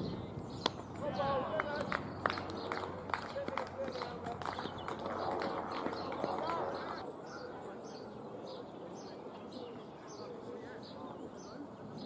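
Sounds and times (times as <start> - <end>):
distant shouts and calls: 0.0 - 12.0.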